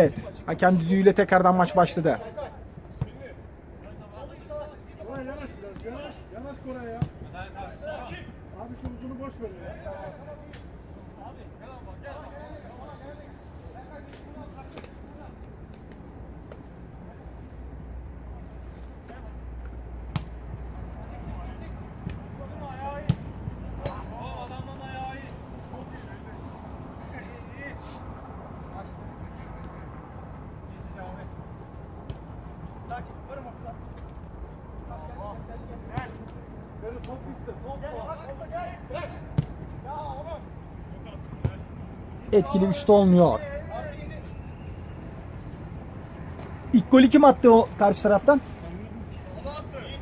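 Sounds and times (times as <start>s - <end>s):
ball being kicked: 20.1s - 20.4s
players shouting: 37.8s - 45.1s.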